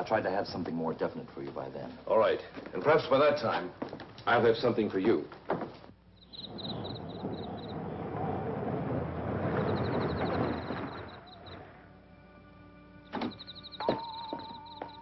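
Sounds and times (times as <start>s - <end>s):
film score music: 6.2s - 15.0s
car driving past: 6.4s - 12.0s.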